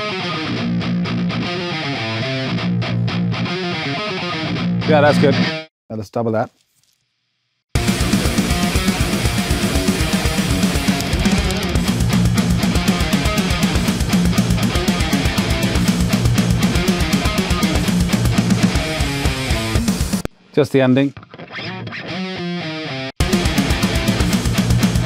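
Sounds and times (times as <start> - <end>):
distorted electric guitar riff: 0.0 - 5.7, 7.8 - 20.3, 21.2 - 25.0.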